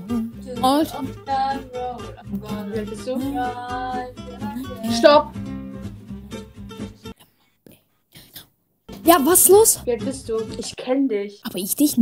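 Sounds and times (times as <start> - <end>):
soft singing voice: 0.0 - 5.3
guitar music: 0.0 - 7.1, 8.9 - 10.9.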